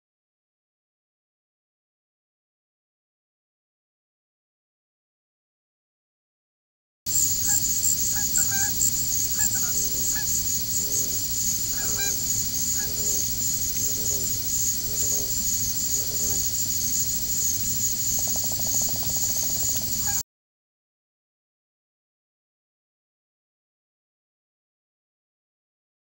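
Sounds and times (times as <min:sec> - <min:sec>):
ducks calling: 0:07.1 - 0:20.2
steady high hiss: 0:07.1 - 0:20.2.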